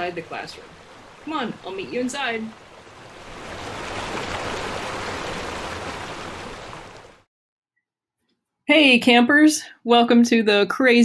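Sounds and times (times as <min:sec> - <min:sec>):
running water rushing: 0:00.0 - 0:07.3.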